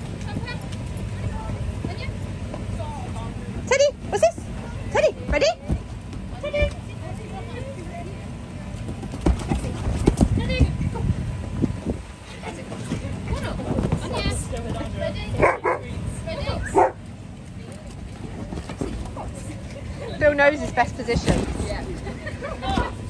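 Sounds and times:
dogs barking and vocalizing: 0:15.4 - 0:15.9, 0:16.6 - 0:17.0.

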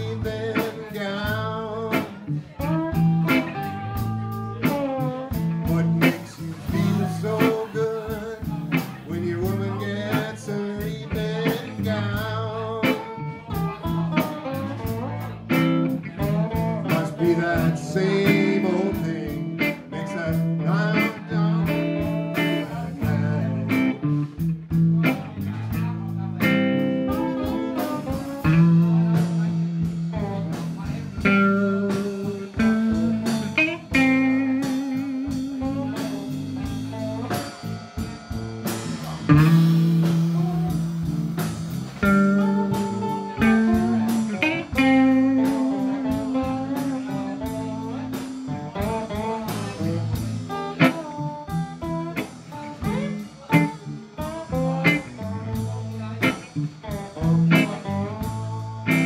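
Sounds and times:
blues band playing: 0:00.0 - 0:59.0.

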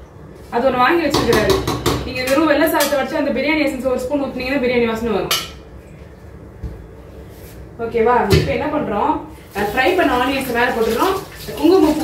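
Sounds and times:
woman talking: 0:00.5 - 0:05.4, 0:07.8 - 0:12.0
tap water running into sink: 0:09.7 - 0:12.0.

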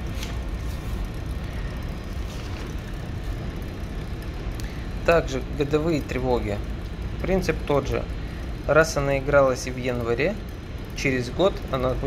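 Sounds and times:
paper rustling: 0:00.0 - 0:01.0, 0:02.2 - 0:02.9
steady low rumble: 0:00.0 - 0:12.0.

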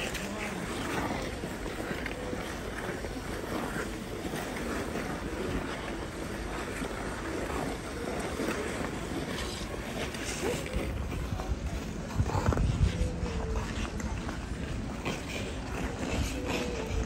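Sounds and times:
ice skate blades scraping: 0:00.0 - 0:17.0
wind on microphone: 0:00.0 - 0:17.0.

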